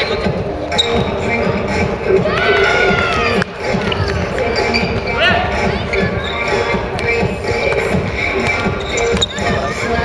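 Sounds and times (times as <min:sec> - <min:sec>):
sneakers squeaking on gym floor: 0:00.0 - 0:01.8, 0:02.7 - 0:10.0
music: 0:00.0 - 0:10.0.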